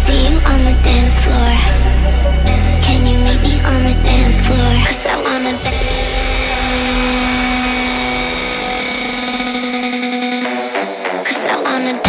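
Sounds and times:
pulsing low bass: 0.0 - 9.8.

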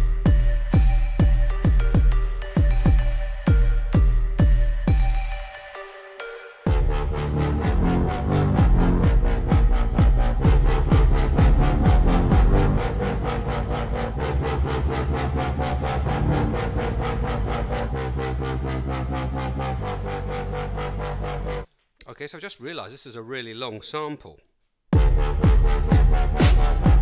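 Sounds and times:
electronic dance beat with heavy bass: 0.0 - 5.6, 6.7 - 21.7, 25.0 - 27.0.

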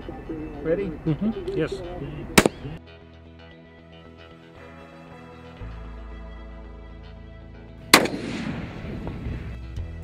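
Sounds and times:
background music: 0.0 - 10.0
rifle shot: 2.4 - 2.6, 7.9 - 9.3.

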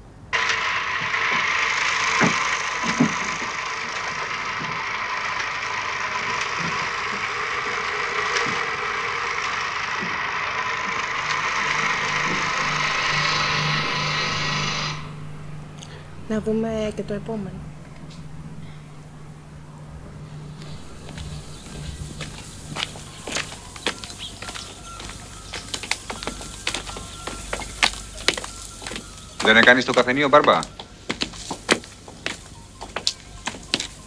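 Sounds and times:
film camera whirring: 0.3 - 16.3, 17.6 - 34.0.

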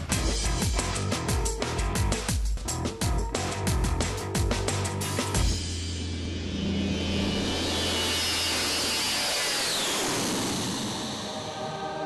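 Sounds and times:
high jet engine whine: 5.5 - 12.0
jet airliner taking off overhead: 7.0 - 12.0.

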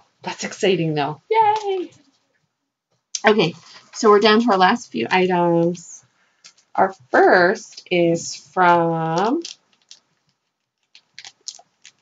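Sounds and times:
package crinkling: 9.2 - 12.0.

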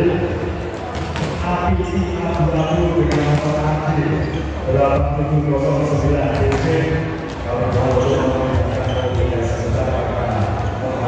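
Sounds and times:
amplified voice in a hall: 0.0 - 11.0
volleyballs smacking and bouncing: 0.7 - 1.6, 2.3 - 3.7, 6.2 - 8.9.

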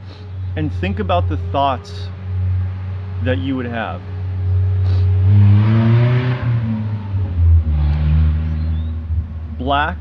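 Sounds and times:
vehicle engine revving: 0.2 - 9.5.

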